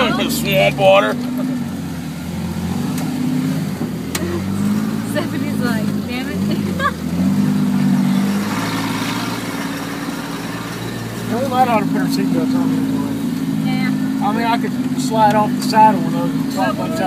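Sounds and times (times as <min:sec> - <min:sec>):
faint voices: 0:00.0 - 0:01.7
off-road vehicle engine revving: 0:00.0 - 0:17.0.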